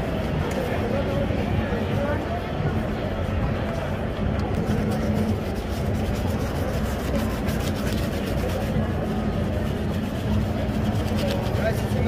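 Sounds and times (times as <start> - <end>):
low rumble of street traffic: 0.0 - 12.0
brush scrubbing leather shoe: 4.4 - 12.0.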